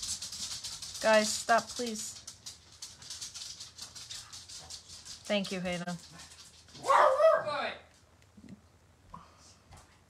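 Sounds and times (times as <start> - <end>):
dog barking: 6.8 - 7.7.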